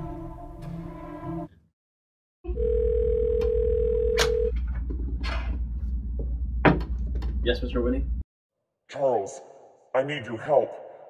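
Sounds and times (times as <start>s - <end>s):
telephone tone: 2.5s - 4.5s.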